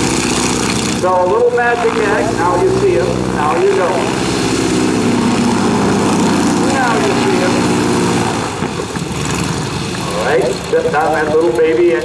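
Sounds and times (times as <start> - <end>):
biplane piston engine running: 0.0 - 12.0.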